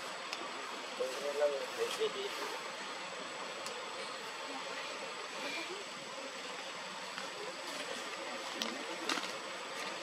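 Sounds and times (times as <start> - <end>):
outdoor hiss: 0.0 - 10.0.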